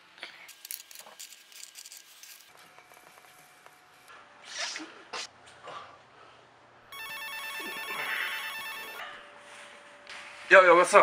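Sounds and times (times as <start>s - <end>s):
mobile phone ringtone beeping: 6.9s - 9.0s.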